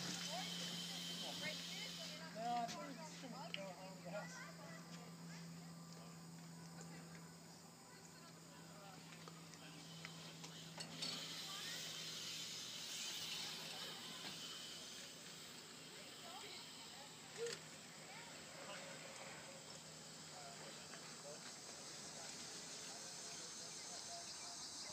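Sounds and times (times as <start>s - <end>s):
insects chirping: 0.0s - 24.9s
short loud insect call: 9.7s - 17.9s.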